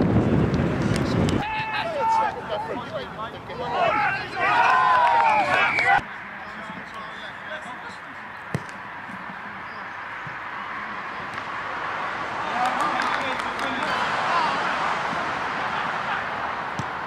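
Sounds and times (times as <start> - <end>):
outdoor background: 0.0 - 17.0
men shouting excitedly: 1.4 - 6.0, 12.2 - 16.7.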